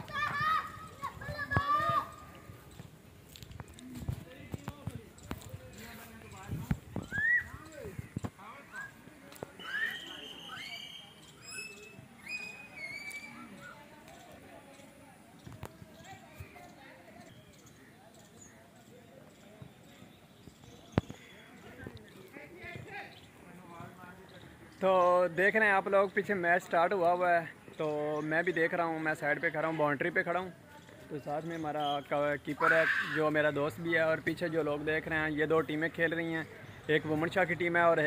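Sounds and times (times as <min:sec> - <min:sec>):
faint distant voices: 0:00.0 - 0:38.0
footsteps on dry dirt: 0:01.0 - 0:07.0.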